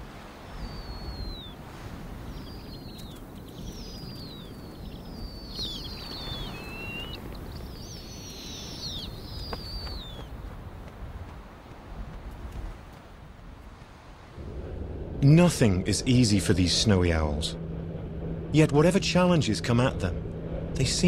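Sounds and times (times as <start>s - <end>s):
wind rushing: 0.0s - 21.0s
high downward-sliding bird chirps: 0.5s - 1.6s, 2.2s - 10.3s.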